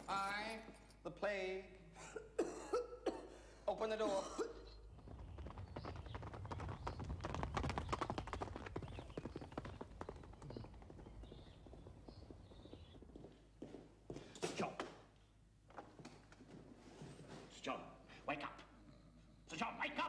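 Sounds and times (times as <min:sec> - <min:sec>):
horse hoofbeats on dirt: 0:04.5 - 0:15.0.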